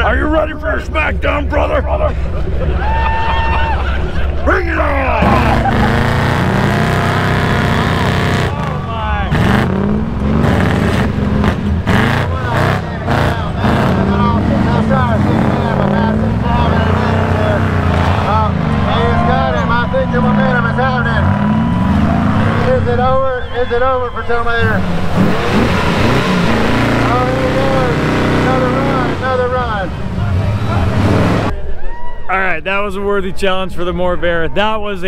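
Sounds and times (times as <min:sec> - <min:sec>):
voices: 0:00.0 - 0:35.0
engines revving hard: 0:03.6 - 0:31.6.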